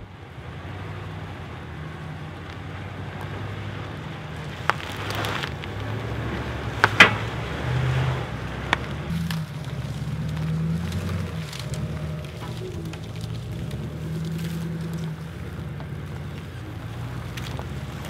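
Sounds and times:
truck engine under load: 0:00.0 - 0:18.0
dry brush snapping: 0:03.2 - 0:07.4, 0:08.7 - 0:18.0.

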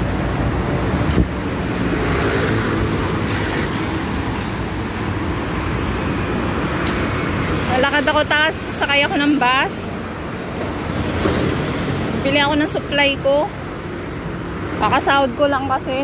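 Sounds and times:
city road traffic: 0:00.0 - 0:16.0.

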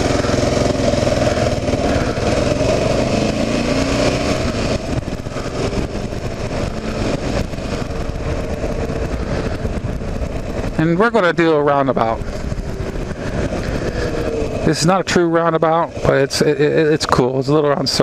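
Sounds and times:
motorcycle engine accelerating: 0:00.0 - 0:18.0
wind and road noise: 0:00.0 - 0:18.0.

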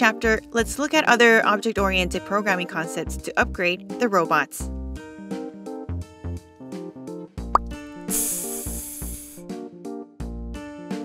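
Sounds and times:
light outro music: 0:07.6 - 0:09.5
hissing whoosh: 0:08.1 - 0:09.4.

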